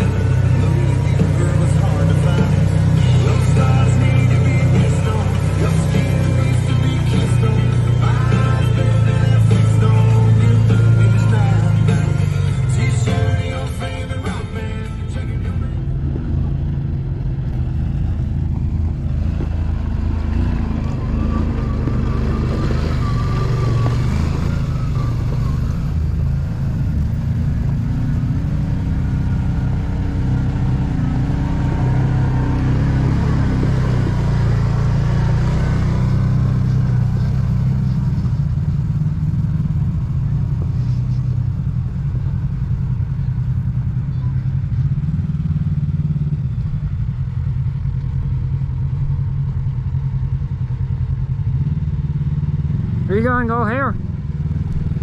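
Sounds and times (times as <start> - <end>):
utility vehicle engines droning: 0.0 - 55.0
vehicle passing close: 15.3 - 38.6.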